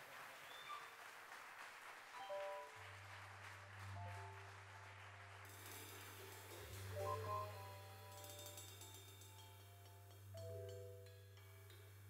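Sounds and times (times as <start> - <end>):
organ chords: 2.2 - 12.0.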